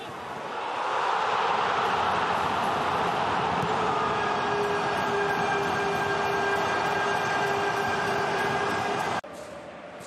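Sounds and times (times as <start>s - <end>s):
stadium crowd cheering: 0.4s - 9.2s.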